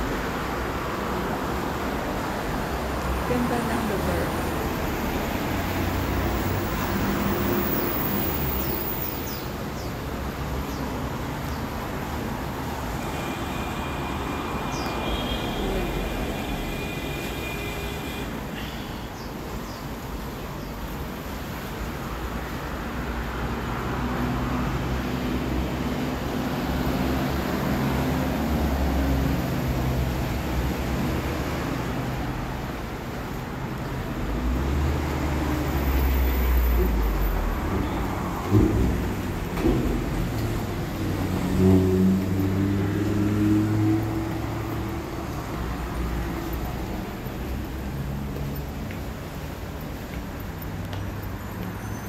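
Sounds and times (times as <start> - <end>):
road traffic passing: 0.0 - 52.0
heavy vehicle rumble: 23.8 - 52.0
sharp knocks: 38.4 - 40.7.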